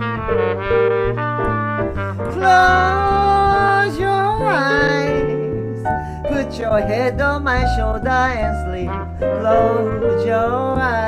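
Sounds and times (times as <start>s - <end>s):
jazz trumpet: 0.0s - 7.1s, 8.5s - 11.0s
bass: 0.0s - 11.0s
piano: 0.0s - 11.0s.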